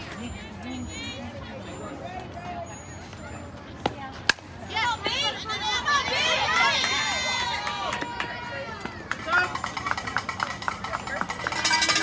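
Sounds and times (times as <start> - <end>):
spectators chattering: 0.0 - 12.0
crowd cheering and shouting: 4.7 - 10.0.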